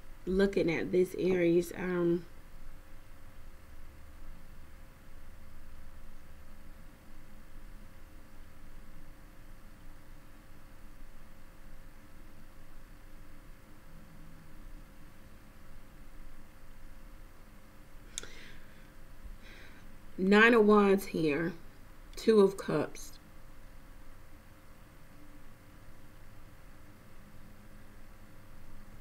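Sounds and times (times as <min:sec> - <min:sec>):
faint steady hum: 0:00.0 - 0:29.0
steady hiss: 0:00.0 - 0:29.0.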